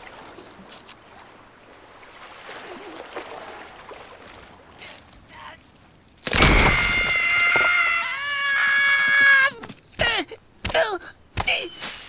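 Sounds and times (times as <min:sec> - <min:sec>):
water lapping: 0:00.0 - 0:05.9
ice cracking: 0:04.8 - 0:07.9.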